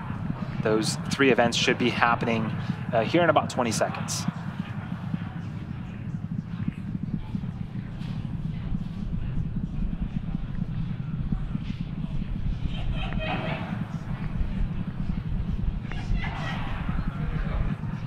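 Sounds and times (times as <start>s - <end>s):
faint voices: 0.0s - 18.0s
rocket engines rumbling: 0.0s - 18.0s.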